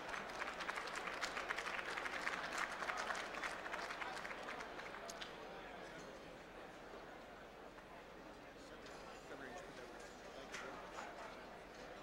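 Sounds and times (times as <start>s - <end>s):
audience applauding: 0.0s - 5.0s.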